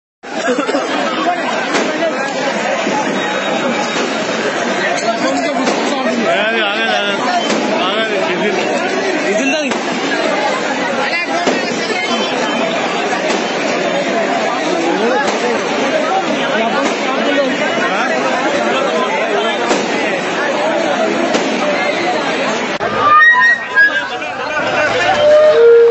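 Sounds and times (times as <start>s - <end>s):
crowd talking and calling out: 0.2s - 25.9s
sharp crack: 1.7s - 2.2s, 5.6s - 6.0s, 7.4s - 7.9s, 9.7s - 10.2s, 13.2s - 13.8s, 16.8s - 17.2s, 19.6s - 20.1s, 21.3s - 21.7s.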